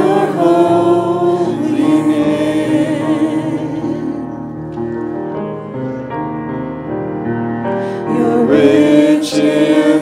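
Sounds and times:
group singing into microphones: 0.0 - 4.6, 8.1 - 10.0.

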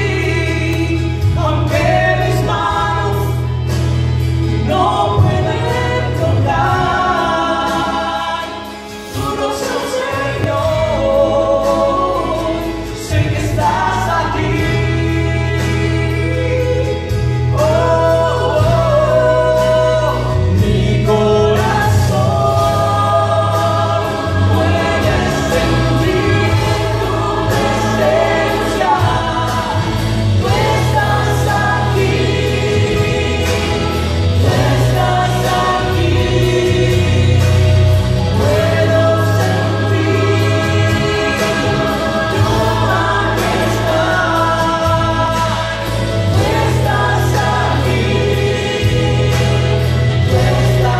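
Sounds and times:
instrumental accompaniment: 0.0 - 50.9
man and woman singing: 0.0 - 50.9.

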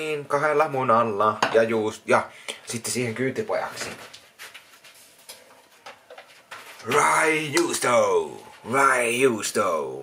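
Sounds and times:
man talking: 0.0 - 4.1, 6.8 - 10.0.

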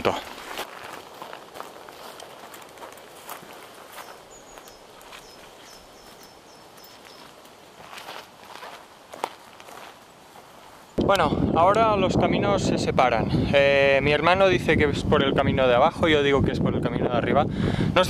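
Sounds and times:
footsteps through dry grass: 0.0 - 11.0
twigs crackling and snapping: 0.4 - 9.9
faint high chirp: 3.9 - 7.4.

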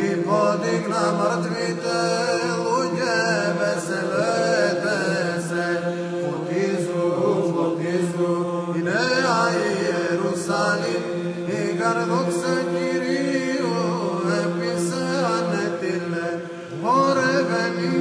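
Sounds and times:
held vocal drone: 0.0 - 18.0
man chanting melody: 11.5 - 18.0.

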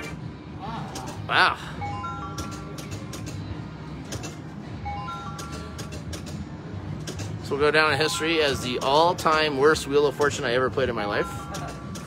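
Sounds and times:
slot reels clicking: 1.8 - 3.4, 4.0 - 6.4, 8.1 - 12.0.

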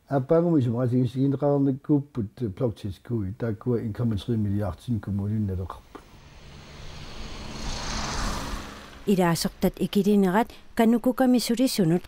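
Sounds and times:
car passing by: 5.7 - 10.8.

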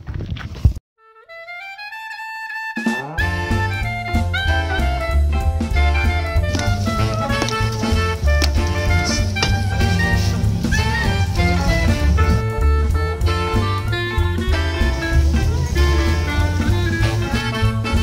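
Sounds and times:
jazzy music with bass line: 1.3 - 18.0.

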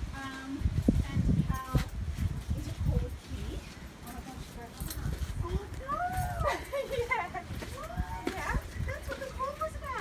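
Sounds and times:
people talking: 0.1 - 10.0
footsteps on stone stairs: 0.2 - 10.0.

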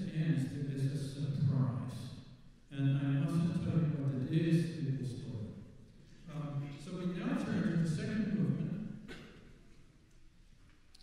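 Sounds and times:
man speaking in reverberant hall: 0.0 - 10.0.

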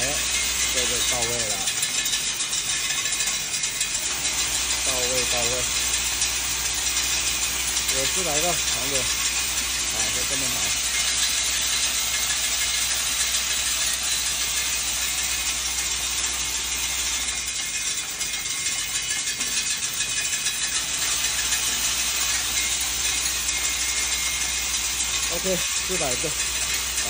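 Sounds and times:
low machine hum: 0.0 - 27.0
sorting machine rattle and hiss: 0.0 - 27.0.

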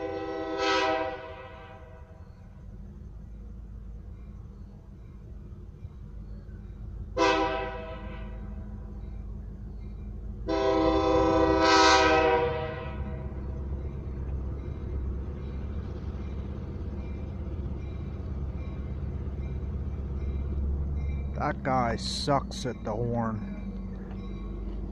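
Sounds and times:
train air horn blasts: 0.0 - 2.2, 7.2 - 8.6, 10.4 - 13.3
train rumbling: 0.0 - 24.9.

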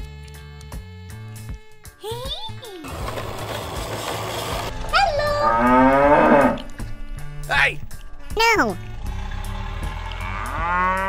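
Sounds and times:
cow mooing: 5.2 - 7.0, 9.1 - 11.0.

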